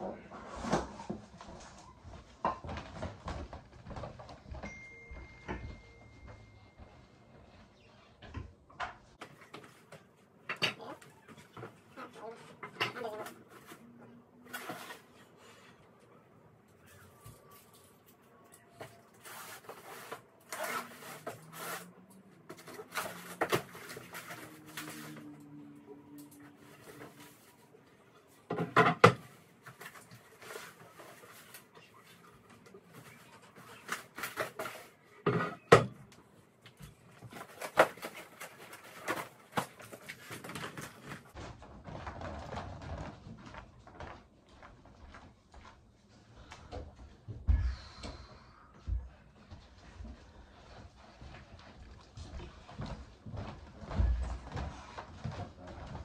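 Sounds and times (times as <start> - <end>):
packing material rustling: 18.9 - 25.3, 37.1 - 44.0.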